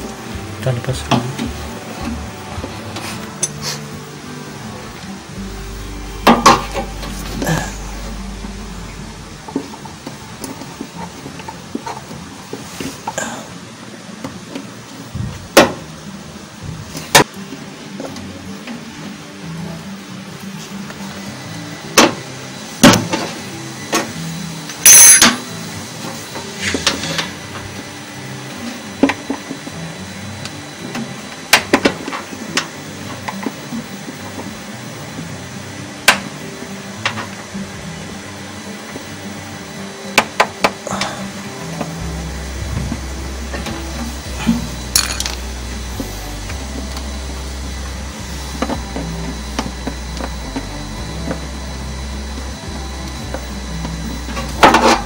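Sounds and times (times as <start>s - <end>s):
background music with bass: 0.0s - 55.0s.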